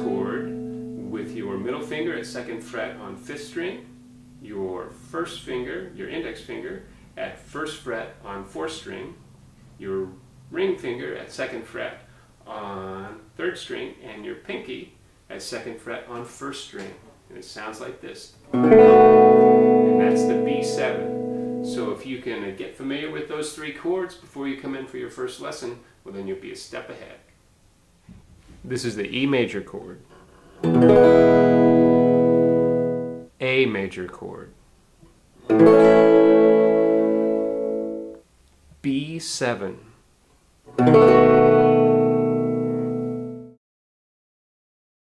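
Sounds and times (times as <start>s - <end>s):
electric guitar chord strummed: 0.0s - 6.0s, 18.5s - 22.0s, 30.6s - 33.3s, 35.4s - 38.2s, 40.7s - 43.6s.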